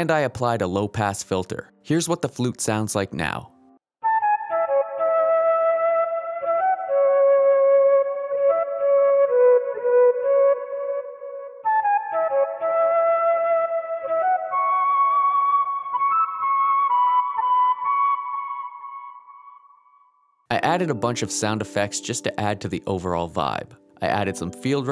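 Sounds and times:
muffled flute melody: 0:04.0 - 0:19.3.

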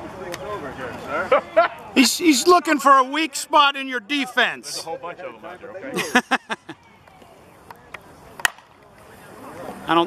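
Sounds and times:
bat hitting softball: 0:08.4 - 0:08.8.

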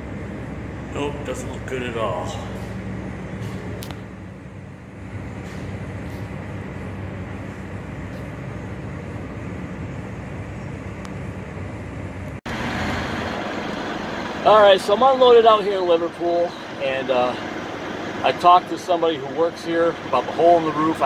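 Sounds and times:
diesel truck engine idling: 0:00.0 - 0:21.0.

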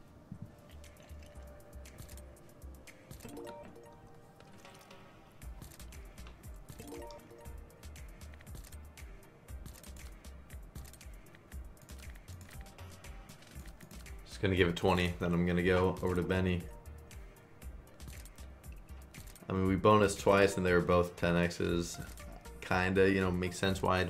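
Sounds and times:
slot reels clicking: 0:00.9 - 0:05.0, 0:06.7 - 0:07.5.

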